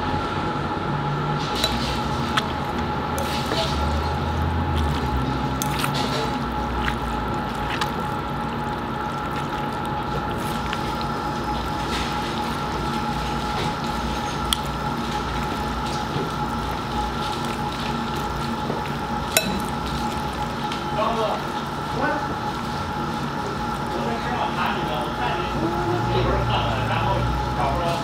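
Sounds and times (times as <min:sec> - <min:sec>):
steady background hum: 0:00.0 - 0:28.0
noodles squishing in a bowl: 0:01.4 - 0:28.0
chopsticks clicking against bowl: 0:04.8 - 0:07.0.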